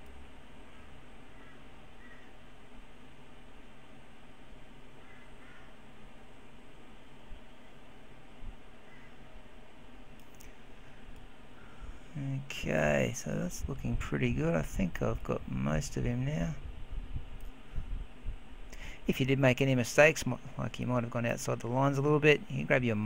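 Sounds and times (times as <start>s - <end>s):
microphone hiss and hum: 0.0s - 23.0s.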